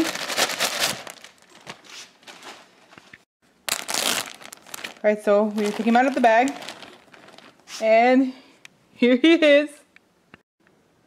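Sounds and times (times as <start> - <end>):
plastic bag crinkling: 0.0 - 2.8, 3.6 - 7.8.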